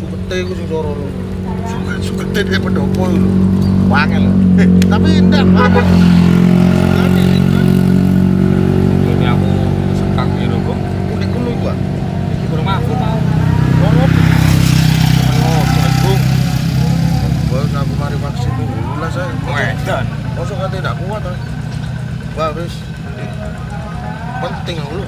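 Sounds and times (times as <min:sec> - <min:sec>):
motorcycle engine droning: 0:00.0 - 0:25.0
voices talking: 0:00.0 - 0:25.0.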